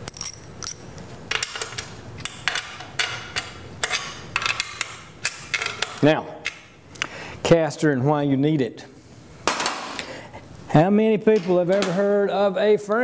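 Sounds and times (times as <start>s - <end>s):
clamps clicking and clinking: 0.0s - 6.0s.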